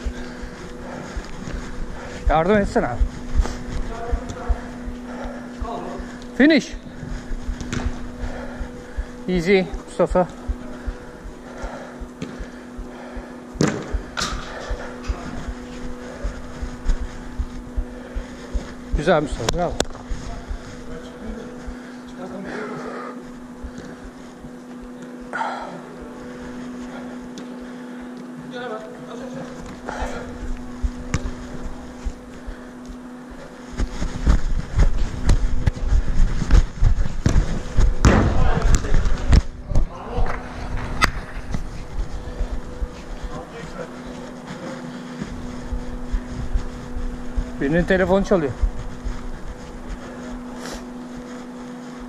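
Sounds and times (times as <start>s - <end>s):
heavy low rumble with thumps: 0.0s - 21.9s, 33.8s - 43.6s
steady low hum: 0.0s - 52.0s.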